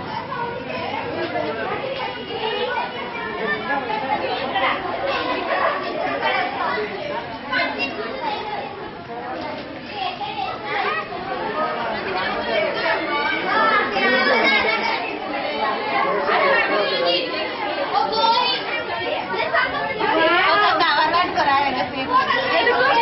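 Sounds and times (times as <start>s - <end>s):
women and girls chattering: 0.0s - 23.0s.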